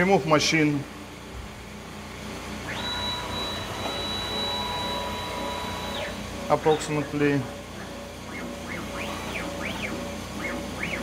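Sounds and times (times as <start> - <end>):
vacuum compressor hum: 0.0 - 11.0
drive motors whining: 2.5 - 11.0.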